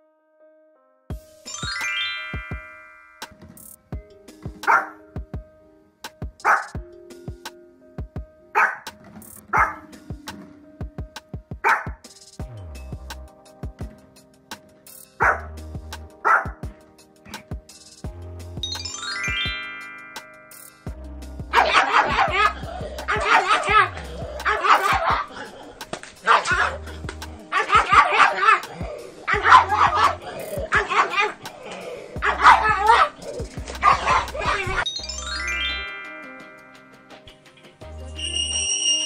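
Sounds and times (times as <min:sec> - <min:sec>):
background music with steady beat: 0:01.1 - 0:39.0
small dog barking: 0:04.6 - 0:05.0, 0:06.4 - 0:06.8, 0:08.6 - 0:08.9, 0:09.5 - 0:09.9, 0:11.6 - 0:12.0, 0:15.2 - 0:15.5, 0:16.2 - 0:16.6, 0:21.5 - 0:34.9.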